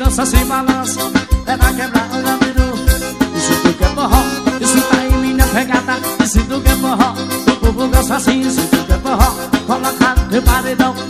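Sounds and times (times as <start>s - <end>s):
accordion: 0.0s - 11.0s.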